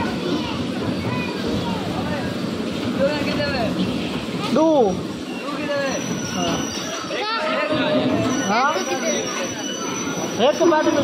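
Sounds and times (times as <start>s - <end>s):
bumper cars rumbling: 0.0s - 11.0s
voices: 0.0s - 11.0s.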